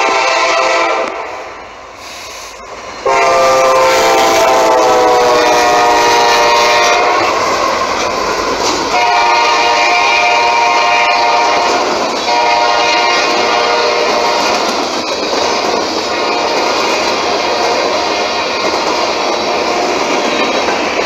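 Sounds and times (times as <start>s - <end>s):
locomotive chime horn blasts: 0.0s - 1.4s, 3.0s - 7.5s, 8.9s - 14.5s
train running noise: 0.0s - 21.0s.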